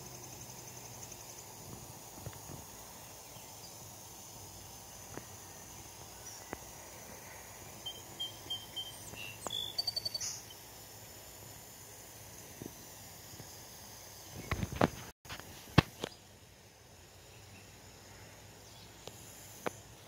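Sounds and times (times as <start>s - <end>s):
faint high insect drone: 0.0s - 20.0s
bird chirping: 7.7s - 10.6s.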